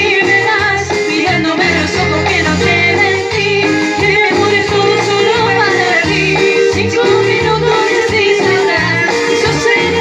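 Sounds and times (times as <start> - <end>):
recorded backing track: 0.0 - 10.0
woman singing into microphone: 0.0 - 10.0.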